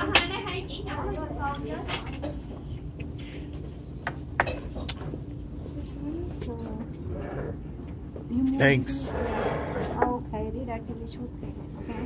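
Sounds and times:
restaurant background rumble: 0.0s - 12.0s.

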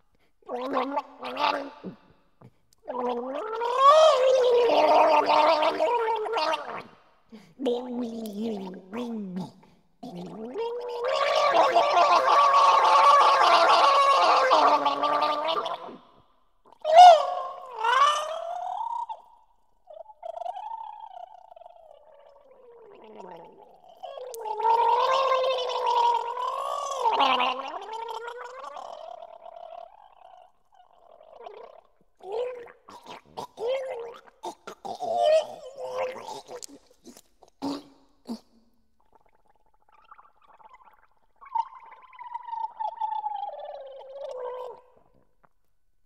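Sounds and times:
person gargling musically: 0.5s - 19.3s, 19.9s - 45.6s.

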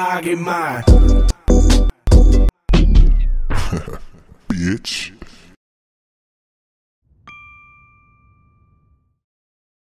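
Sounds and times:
bright chime ding: 7.2s - 9.1s.

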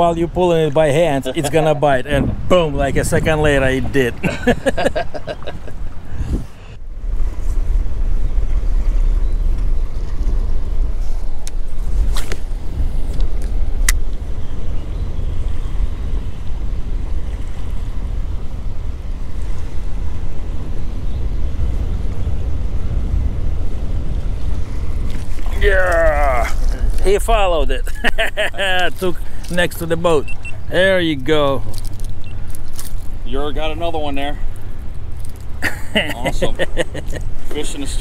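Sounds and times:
water noise: 0.0s - 38.0s
wind buffeting microphone: 0.0s - 38.0s.

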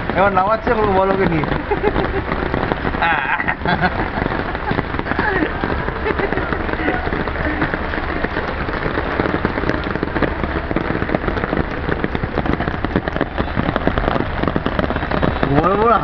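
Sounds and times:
heavy rain on water: 0.0s - 16.0s.

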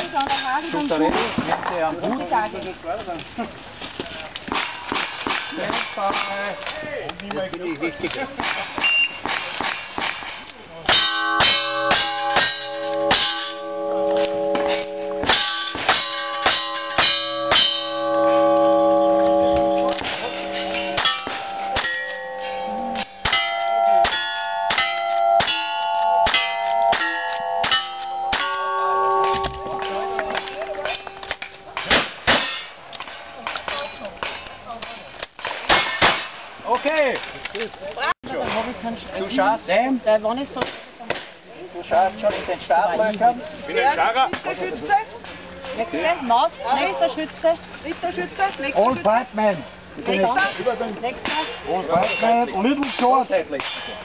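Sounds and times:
steel target ringing clang: 10.9s - 32.8s
gunshots: 31.7s - 33.2s.

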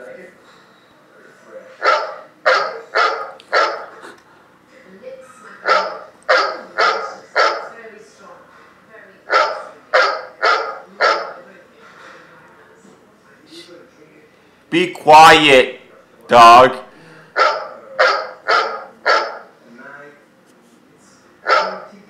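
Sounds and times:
dog barking: 1.8s - 4.0s, 5.6s - 7.8s, 9.3s - 11.4s, 17.4s - 19.6s, 21.4s - 21.9s.

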